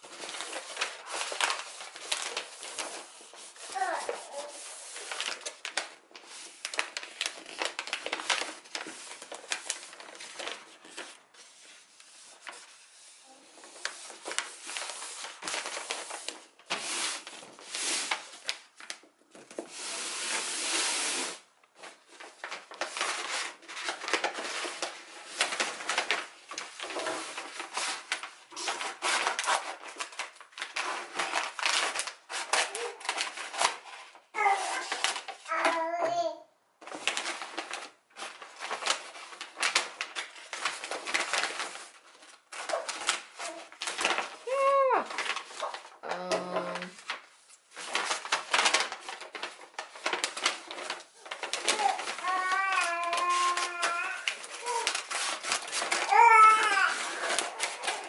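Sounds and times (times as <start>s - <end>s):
wrapping paper rustling: 0.0s - 58.0s.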